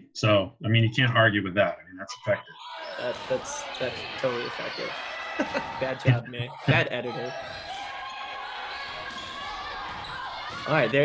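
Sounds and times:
distant voices: 0:00.0 - 0:11.0
echoing hall noise: 0:00.0 - 0:11.0.

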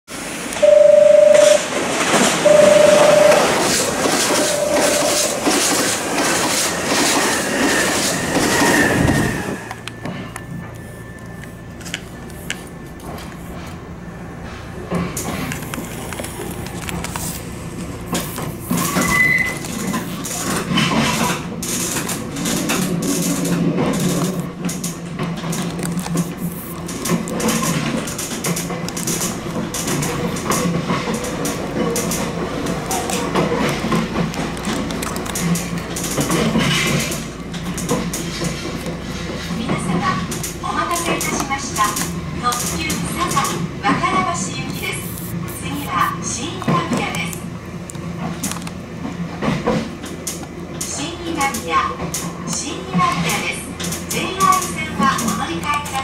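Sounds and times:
train passing with loud rush: 0:00.1 - 0:56.0
train horn blasts: 0:02.4 - 0:05.7
wheels clacking over rail joints: 0:03.4 - 0:10.5, 0:18.1 - 0:44.8.

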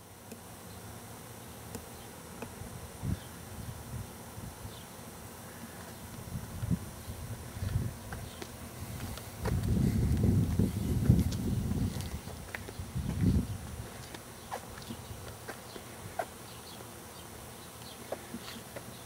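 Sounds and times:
microphone handling noise: 0:06.2 - 0:14.2
wind rumble: 0:08.9 - 0:13.9.

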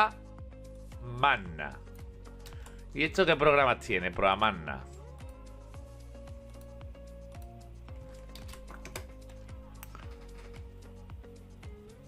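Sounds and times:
background music with beat: 0:00.0 - 0:12.0
computer keyboard typing: 0:08.1 - 0:10.6.

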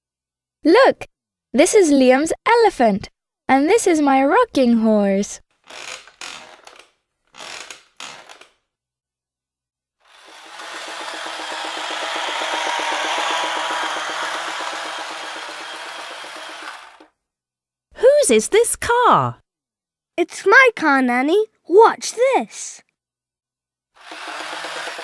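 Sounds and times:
rocking horse creaks: 0:05.6 - 0:08.6
rattling whirr with low hum: 0:10.2 - 0:17.1.

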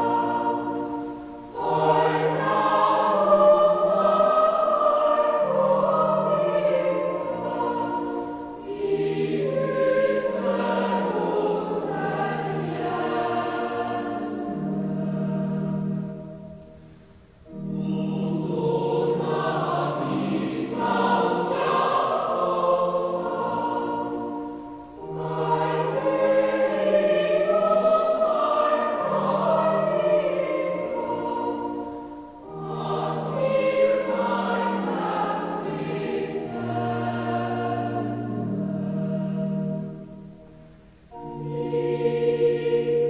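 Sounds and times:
choir breathing: 0:00.0 - 0:43.0
choir singing sacred piece: 0:00.0 - 0:43.0.

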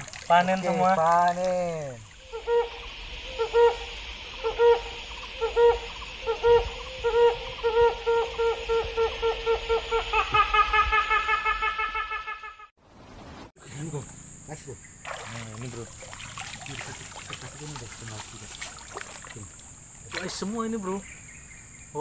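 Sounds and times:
hooting calls: 0:00.0 - 0:12.7.

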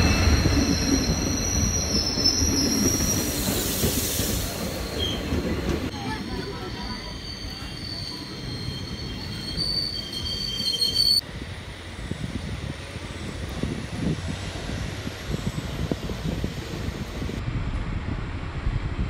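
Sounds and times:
train wheels squealing: 0:00.0 - 0:05.4, 0:06.0 - 0:11.2
train coaches rumbling past: 0:00.0 - 0:18.0.

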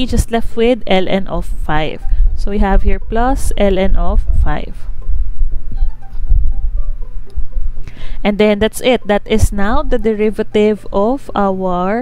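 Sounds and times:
low irregular rumbling throb: 0:00.0 - 0:08.4
steady low hum: 0:00.0 - 0:12.0.

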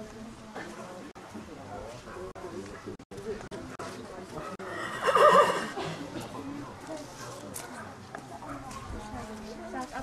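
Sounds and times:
horse whinnying: 0:04.7 - 0:05.8.

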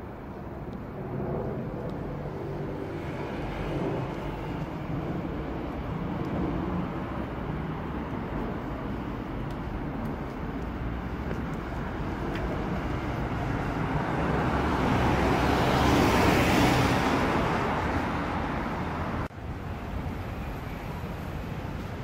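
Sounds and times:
jet airliner engine roar: 0:00.0 - 0:10.6.

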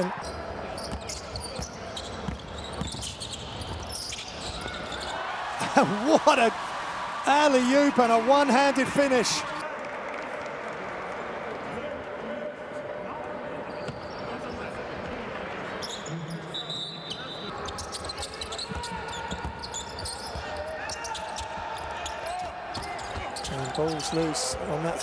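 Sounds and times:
players' voices: 0:05.1 - 0:19.4, 0:21.8 - 0:25.0.

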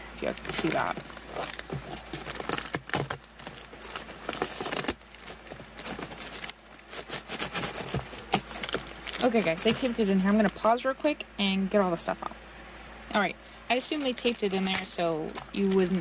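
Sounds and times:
plastic bag crinkling: 0:00.2 - 0:10.8, 0:13.7 - 0:16.0
cardboard rustling: 0:00.3 - 0:10.7, 0:13.7 - 0:16.0.

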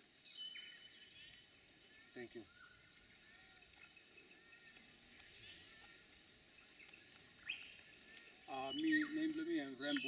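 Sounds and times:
bird calls: 0:00.0 - 0:10.0.

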